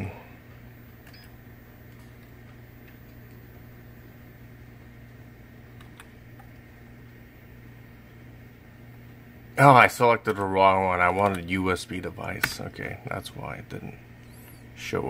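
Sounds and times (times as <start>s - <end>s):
computer humming: 0.0s - 15.0s.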